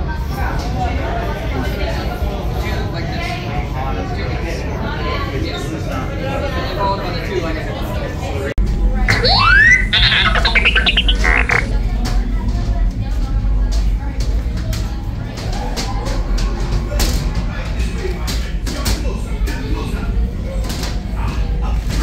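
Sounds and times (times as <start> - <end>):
comic laughing sound effect: 9.1 - 11.7
indistinct voices: 9.1 - 11.7.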